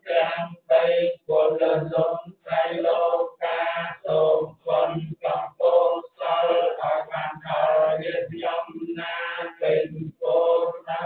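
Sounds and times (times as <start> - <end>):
monks chanting in unison: 0.0 - 11.0.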